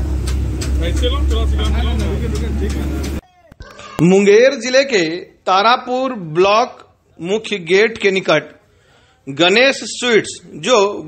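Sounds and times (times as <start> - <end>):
people talking: 0.8 - 8.5.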